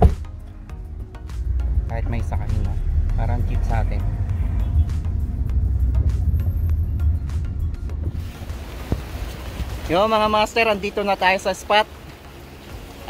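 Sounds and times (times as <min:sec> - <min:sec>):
road noise inside car: 0:00.0 - 0:10.7
background music: 0:00.0 - 0:13.0
wind and surf: 0:01.4 - 0:13.0.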